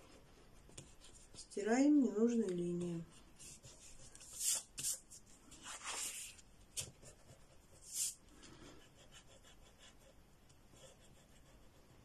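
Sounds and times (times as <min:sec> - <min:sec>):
pencil drawing on paper: 0:03.1 - 0:06.4, 0:07.0 - 0:12.0.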